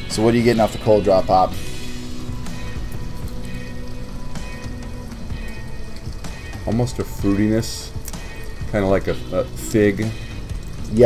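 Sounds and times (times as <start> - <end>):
music with sustained tones: 0.0 - 11.0
steady hiss: 0.0 - 11.0.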